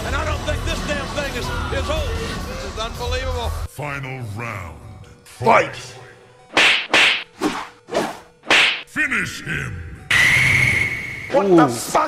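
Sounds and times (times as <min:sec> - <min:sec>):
swooshing punch sound effects: 0:06.5 - 0:07.3.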